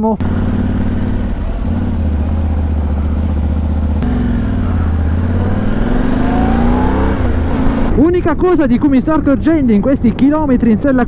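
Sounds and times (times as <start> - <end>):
motorcycle engine running: 0.2 - 8.0.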